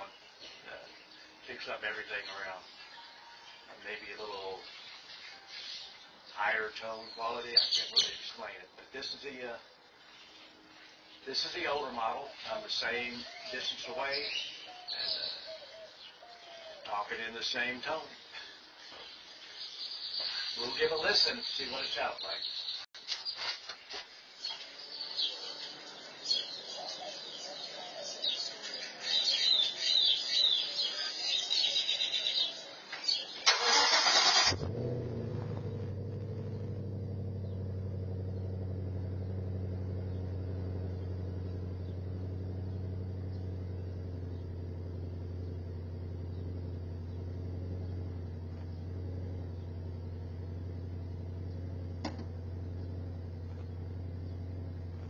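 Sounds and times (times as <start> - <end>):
car engine idling: 32.8 - 55.0
engine cranking: 33.4 - 55.0.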